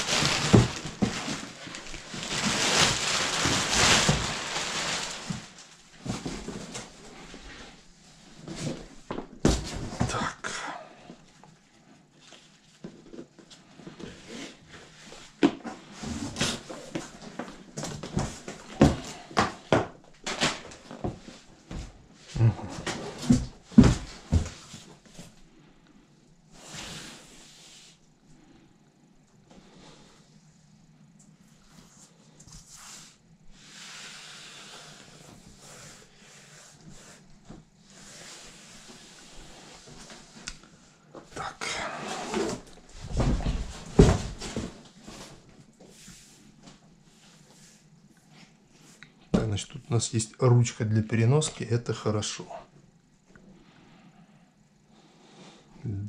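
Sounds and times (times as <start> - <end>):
stiff plastic rustling and rubbing: 0.0 - 9.0.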